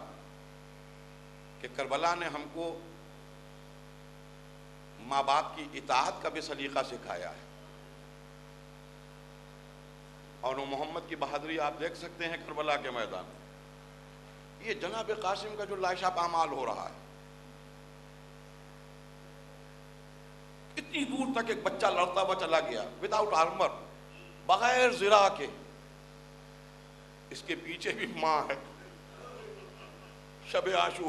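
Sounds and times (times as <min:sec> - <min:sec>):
electrical mains hum: 0:00.0 - 0:31.0.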